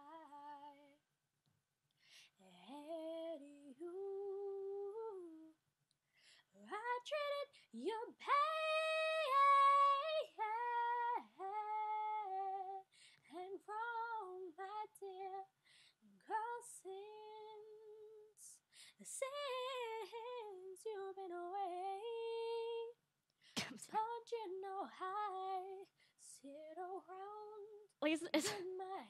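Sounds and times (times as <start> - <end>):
woman singing unaccompanied: 6.6 - 15.5, 23.8 - 29.0.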